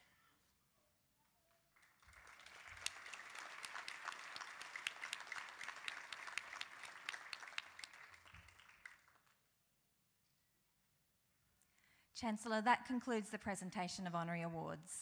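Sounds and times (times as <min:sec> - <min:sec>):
audience applauding: 0:01.8 - 0:09.4.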